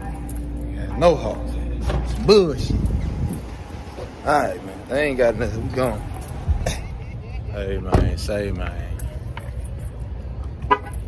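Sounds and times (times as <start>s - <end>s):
low steady rumble: 0.0s - 11.0s
car horn toot: 10.6s - 11.0s.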